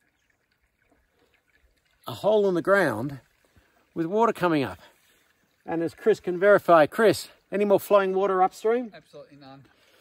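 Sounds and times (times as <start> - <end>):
water trickling and dripping: 0.0 - 10.0.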